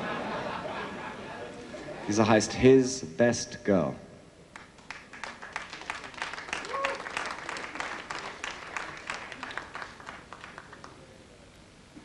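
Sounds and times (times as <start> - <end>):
audience applauding: 4.6 - 11.1.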